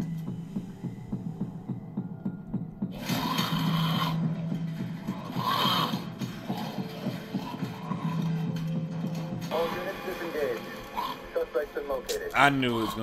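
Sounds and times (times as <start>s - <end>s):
throbbing suspense music: 0.0s - 13.0s.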